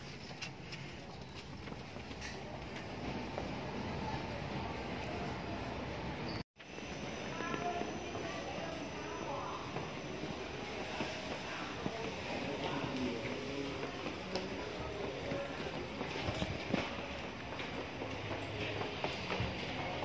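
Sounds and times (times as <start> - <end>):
faint indistinct voices: 6.8 - 20.0.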